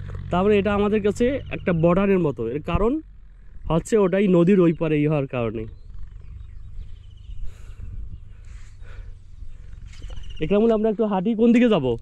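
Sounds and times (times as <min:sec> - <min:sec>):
low rumbling on microphone: 0:00.0 - 0:12.0.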